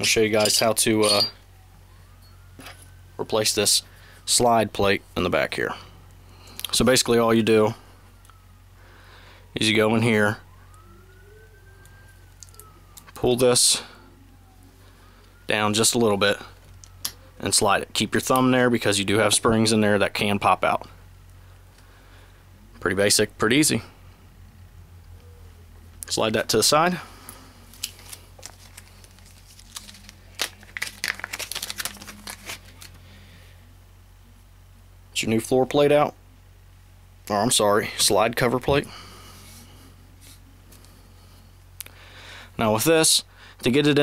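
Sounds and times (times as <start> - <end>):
faint siren wailing: 0.0 - 30.6.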